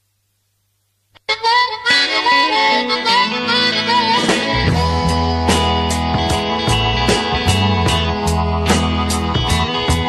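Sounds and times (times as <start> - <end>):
blues-rock music: 1.2 - 10.0
harmonica bending notes: 1.2 - 10.0.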